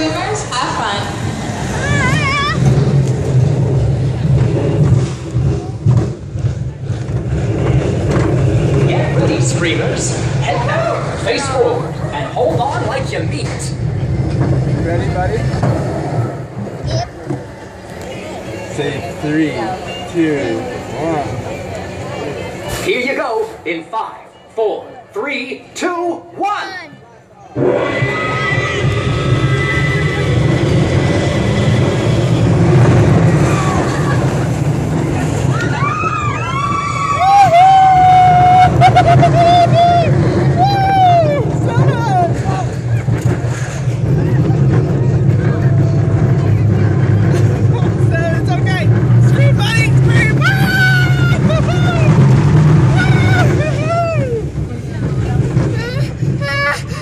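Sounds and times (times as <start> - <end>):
roller coaster rumble: 0.0 - 25.8, 27.1 - 57.0
riders screaming: 1.6 - 2.9, 27.6 - 32.5, 33.3 - 34.6, 35.4 - 42.8, 50.0 - 54.6.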